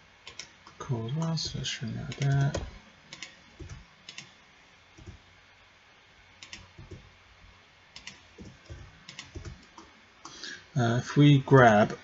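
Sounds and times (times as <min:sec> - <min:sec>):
keyboard key presses: 0:08.0 - 0:09.9.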